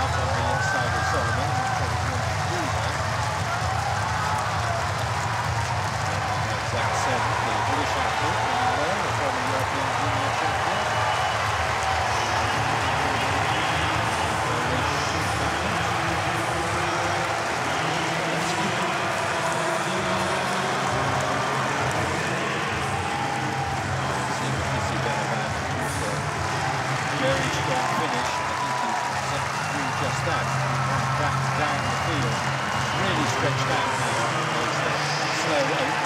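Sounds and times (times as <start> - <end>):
stadium crowd cheering: 0.0 - 36.0.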